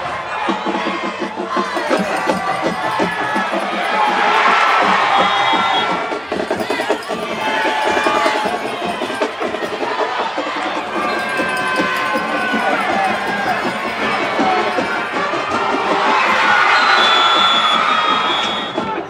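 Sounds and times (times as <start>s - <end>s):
music playing in stands: 0.0s - 19.0s
stadium crowd cheering and shouting: 0.0s - 19.0s.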